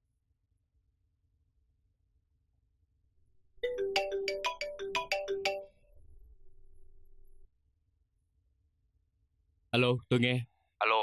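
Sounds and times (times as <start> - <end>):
mobile phone ringtone: 3.6 - 5.8.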